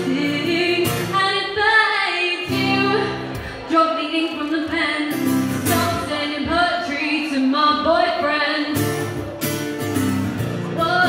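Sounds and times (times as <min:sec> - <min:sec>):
acoustic guitar strumming: 0:00.0 - 0:03.7, 0:04.4 - 0:11.0
woman singing: 0:00.0 - 0:09.1, 0:10.7 - 0:11.0.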